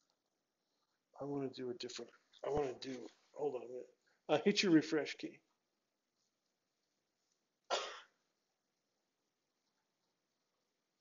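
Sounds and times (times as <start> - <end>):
man coughing: 7.7 - 8.2.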